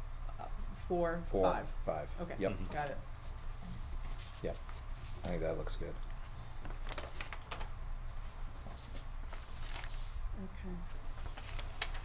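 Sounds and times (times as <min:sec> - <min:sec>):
steady low hum: 0:00.0 - 0:12.0
paper rustling: 0:03.2 - 0:07.8, 0:08.5 - 0:10.2, 0:10.9 - 0:12.0.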